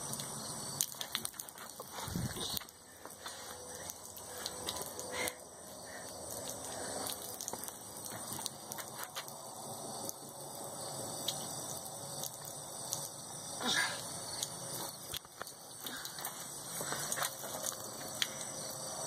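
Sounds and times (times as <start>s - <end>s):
water splashing on concrete: 0.0s - 18.8s.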